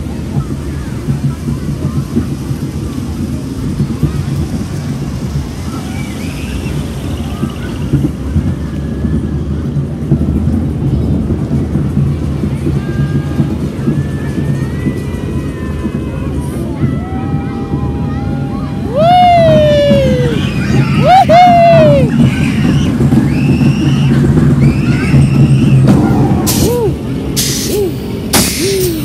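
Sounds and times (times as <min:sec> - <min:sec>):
distant voices: 0:00.0 - 0:29.0
ride car rumbling along track: 0:00.0 - 0:29.0.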